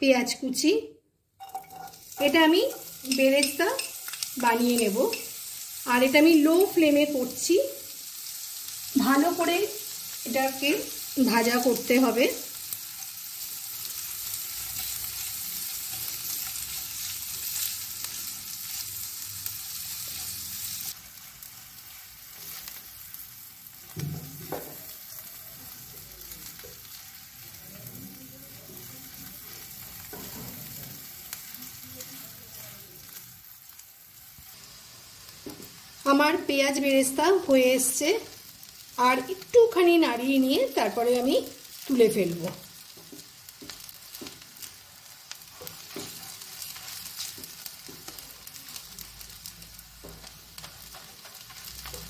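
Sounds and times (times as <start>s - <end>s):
onions sizzling in oil: 1.4s - 52.0s.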